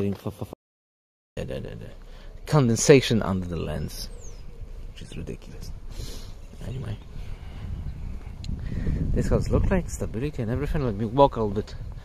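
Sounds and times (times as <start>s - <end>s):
wind rumble on microphone: 3.7s - 12.0s.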